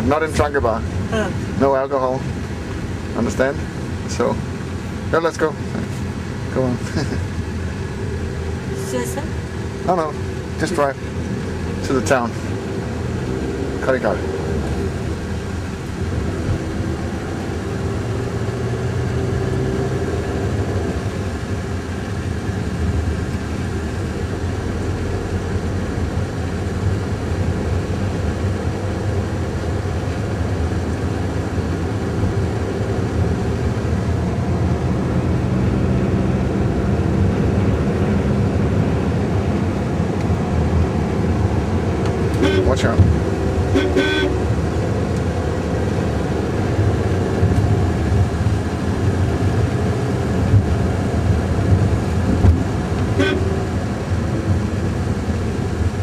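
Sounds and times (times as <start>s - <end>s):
car engine and road noise: 0.0s - 56.0s
car horn toots: 42.4s - 42.9s, 43.7s - 44.5s, 53.1s - 53.7s.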